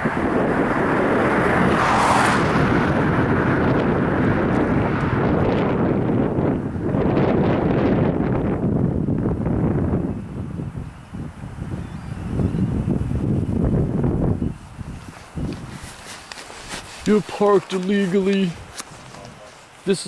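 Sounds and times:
wind buffeting microphone: 0.0 - 19.8.

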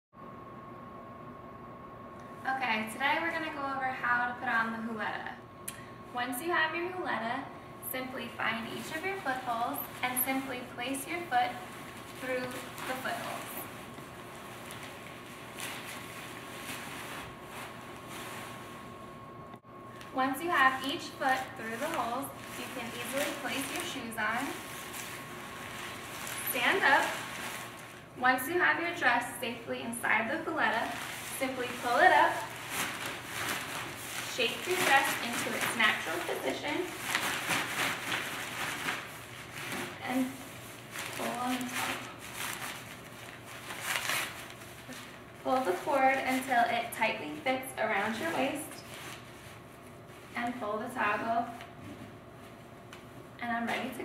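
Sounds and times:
soft fabric rustling: 8.0 - 19.2, 19.9 - 28.1, 29.0 - 54.0.

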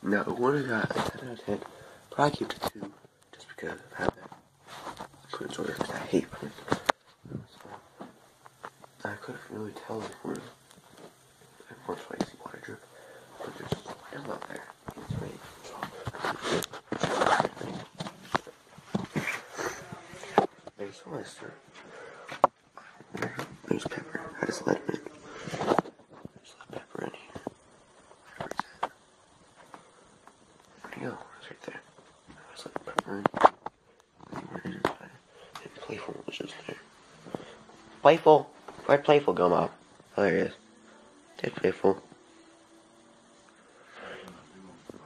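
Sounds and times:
quiet whispered talking: 0.0 - 17.8, 18.4 - 33.5, 34.2 - 45.0
rustling noise: 0.4 - 3.0, 3.9 - 9.0, 13.3 - 20.8.

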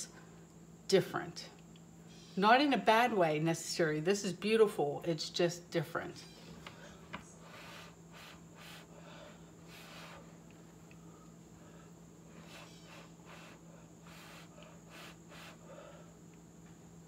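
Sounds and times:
puffs of breath: 6.8 - 10.4, 11.5 - 16.2.

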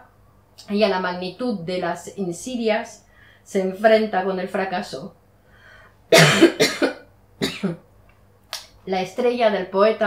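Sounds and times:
woman coughing: 6.1 - 7.8.

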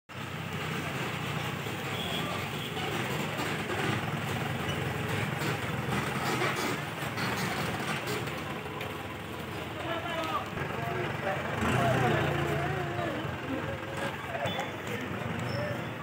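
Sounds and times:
vehicle engine running: 0.1 - 16.0
people's voices: 0.5 - 16.0.

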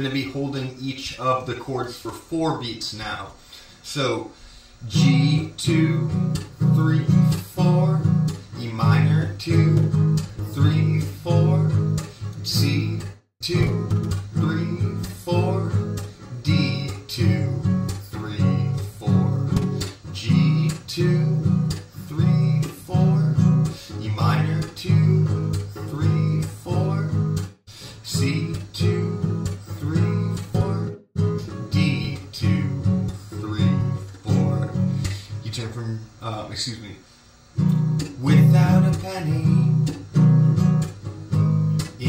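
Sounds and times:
acoustic guitar strumming: 4.8 - 35.8, 37.6 - 42.0.

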